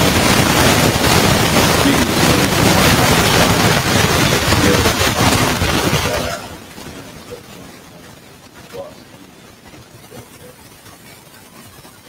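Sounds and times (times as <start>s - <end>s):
loud rushing static noise: 0.0s - 12.0s
faint voice: 1.6s - 7.8s, 8.6s - 9.2s, 9.9s - 12.0s.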